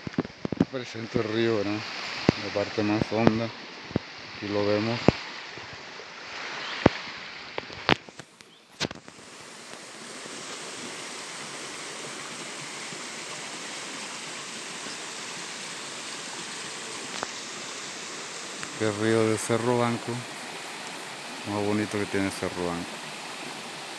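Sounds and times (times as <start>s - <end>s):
river rushing over rocks: 0.0s - 23.9s.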